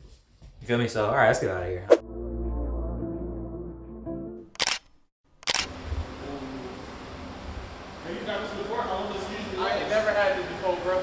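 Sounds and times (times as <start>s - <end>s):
background music: 1.9s - 4.5s.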